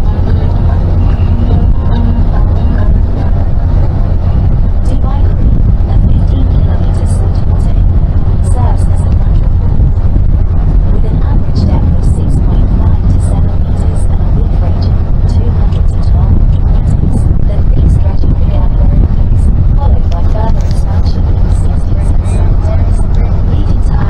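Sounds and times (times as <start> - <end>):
boat engine low rumble: 0.0 - 24.0
faint passengers' voices: 0.0 - 24.0.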